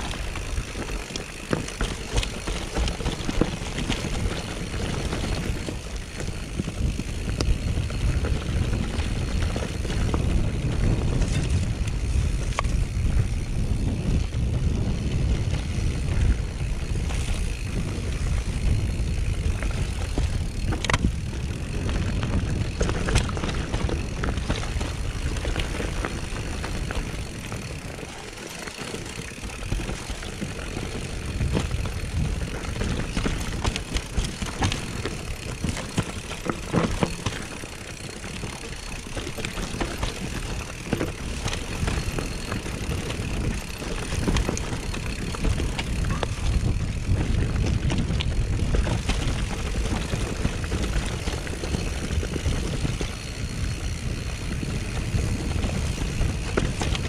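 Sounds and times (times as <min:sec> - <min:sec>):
wind on microphone: 0:00.0 - 0:28.2, 0:29.0 - 0:37.5, 0:38.2 - 0:57.0
bike knocking and rattling: 0:00.0 - 0:57.0
bike tyres rumbling on dirt: 0:00.0 - 0:57.0.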